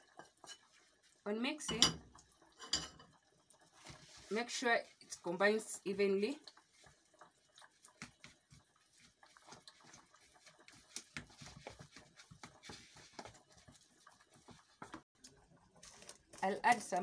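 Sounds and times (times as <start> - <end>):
spoon mixing minced meat: 0.0 - 1.3, 6.2 - 17.0.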